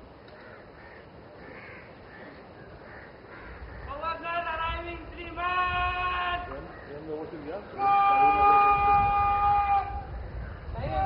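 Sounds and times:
bugle long held note: 7.8s - 10.0s.

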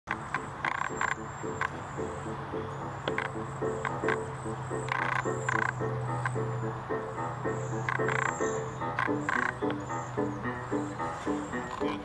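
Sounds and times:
frogs croaking: 0.1s - 12.0s
high-pitched bird calls: 0.1s - 12.0s.

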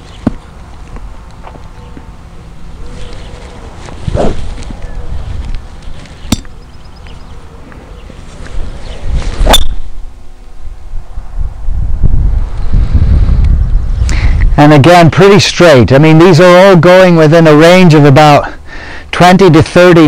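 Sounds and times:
wind rumble on microphone: 0.0s - 15.2s
golf club swish: 4.0s - 4.5s, 9.1s - 9.9s.

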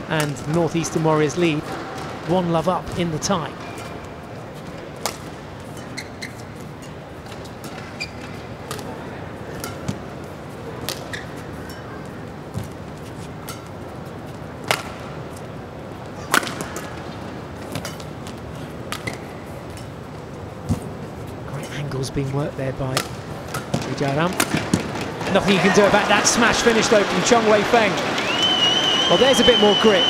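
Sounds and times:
arena background noise: 0.0s - 30.0s
racket striking shuttlecock: 5.0s - 6.0s, 14.6s - 15.0s, 16.3s - 17.0s.

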